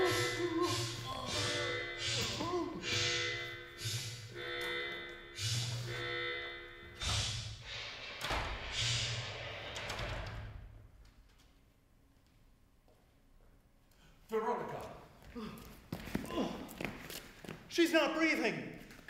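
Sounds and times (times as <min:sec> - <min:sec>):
pulsing alarm tone: 0:00.0 - 0:07.9.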